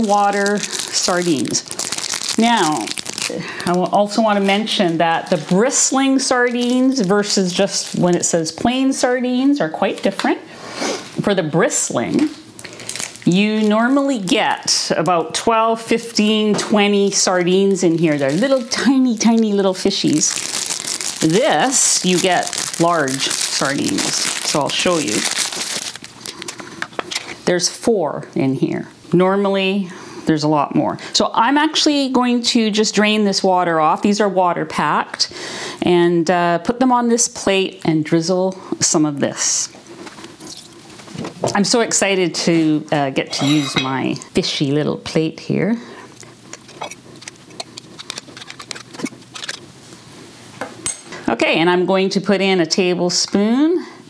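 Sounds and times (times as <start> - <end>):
paper wrapper crinkling and tearing: 0.0 - 8.4, 12.6 - 14.0, 17.9 - 26.6, 46.5 - 49.7.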